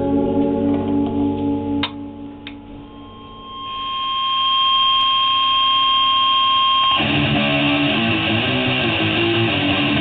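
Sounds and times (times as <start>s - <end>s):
electric guitar feedback tone: 0.0s - 10.0s
strummed guitar: 7.0s - 10.0s.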